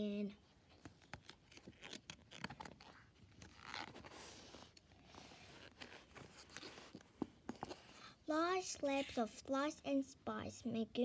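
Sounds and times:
paper pages rustling: 0.7s - 7.9s.

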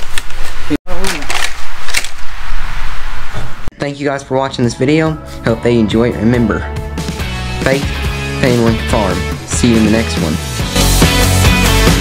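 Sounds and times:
person's voice: 3.7s - 6.7s, 7.6s - 10.5s.

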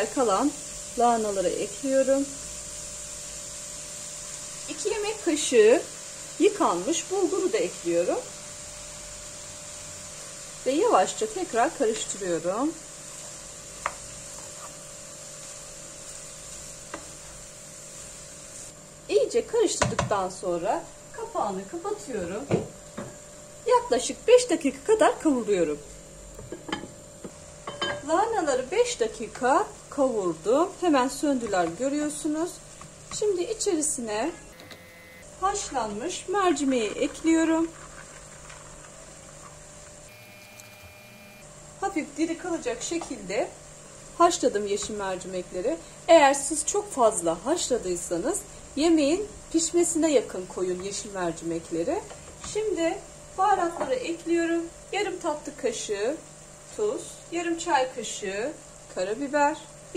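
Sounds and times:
low hiss: 0.0s - 26.4s
sizzle of sauteing: 0.0s - 59.9s
wooden spoon stirring in a pan: 11.8s - 18.7s, 35.8s - 40.0s.

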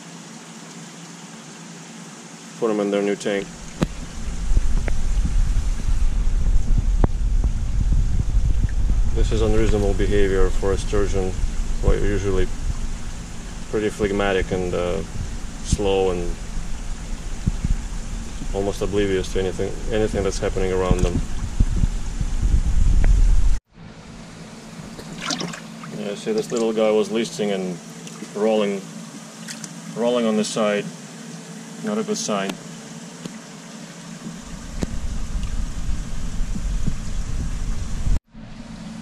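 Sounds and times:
water sloshing and splashing: 3.4s - 7.6s, 24.6s - 30.0s
low rumble on microphone: 3.4s - 26.6s, 34.2s - 38.7s
fish splashing in water: 24.6s - 26.8s, 29.0s - 30.0s.

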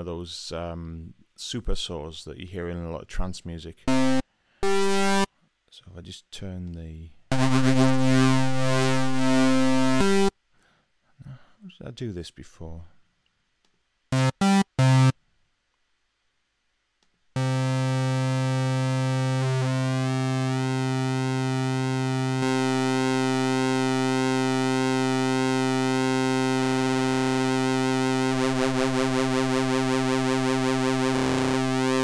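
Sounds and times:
sawtooth synthesizer notes: 3.9s - 5.3s, 7.3s - 10.3s, 14.1s - 15.1s, 17.4s - 32.0s.

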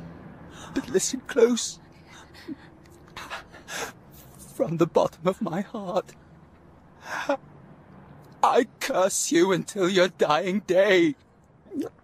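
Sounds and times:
man speaking: 4.4s - 6.1s, 8.4s - 11.2s.

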